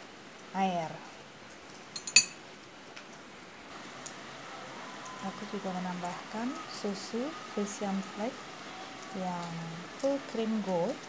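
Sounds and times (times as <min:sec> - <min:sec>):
tableware clinking: 0:02.0 - 0:02.4.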